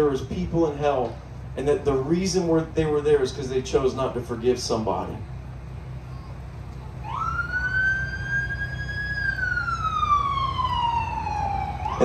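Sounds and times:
siren wailing: 6.1s - 12.0s.

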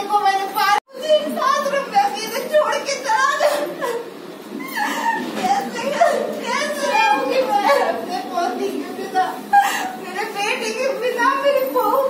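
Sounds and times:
children's voices: 0.0s - 12.0s
voices talking: 0.0s - 12.0s.

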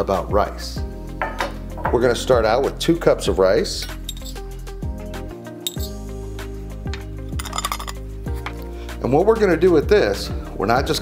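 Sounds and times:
background music: 0.0s - 11.0s
metal clinking against glass: 3.9s - 4.4s, 5.6s - 6.0s, 7.3s - 8.1s.

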